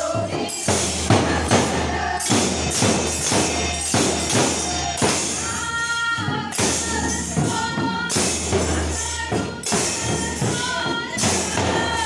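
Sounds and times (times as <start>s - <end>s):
barrel drum beat: 0.0s - 12.0s
hand cymbals jingling: 0.0s - 12.0s.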